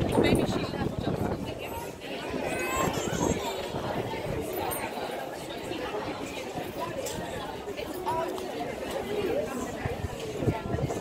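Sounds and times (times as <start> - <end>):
chatter of many people: 0.0 - 11.0.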